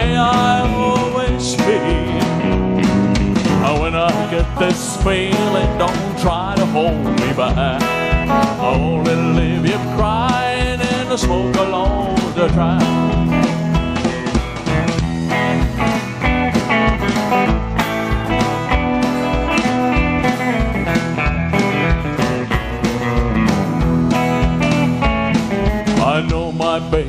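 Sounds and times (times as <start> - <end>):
person singing: 0.0 - 2.7, 3.5 - 13.2, 25.9 - 27.0
country band playing: 0.0 - 27.0.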